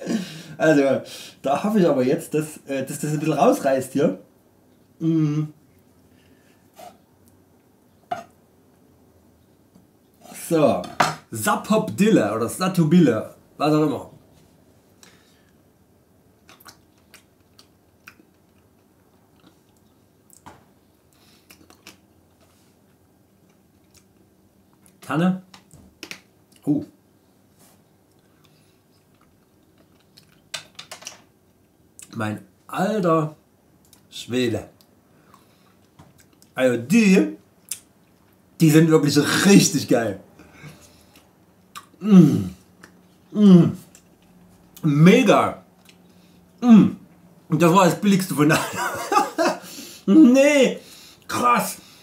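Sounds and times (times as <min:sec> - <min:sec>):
man grunting uh: 0:05.0 - 0:05.6, 0:42.0 - 0:42.6, 0:43.4 - 0:43.8
wet chewing mouth clicks: 0:16.4 - 0:20.4.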